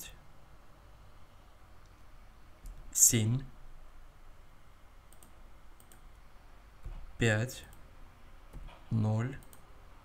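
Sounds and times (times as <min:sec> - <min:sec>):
low background hiss: 0:00.0 - 0:10.0
faint computer mouse clicks: 0:05.1 - 0:06.2, 0:09.4 - 0:09.7.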